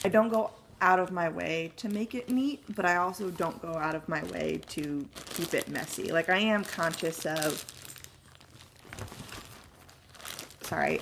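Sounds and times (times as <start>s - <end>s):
plastic crinkling: 1.6s - 11.0s.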